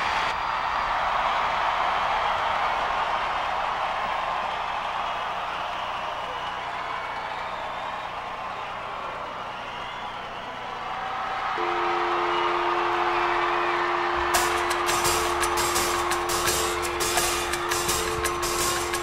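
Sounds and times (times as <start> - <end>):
crowd cheering and shouting: 0.0 - 19.0.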